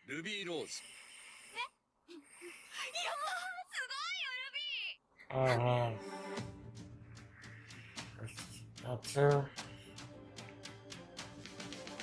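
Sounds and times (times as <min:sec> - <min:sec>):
high-pitched female voice exclaiming: 0:02.8 - 0:05.0.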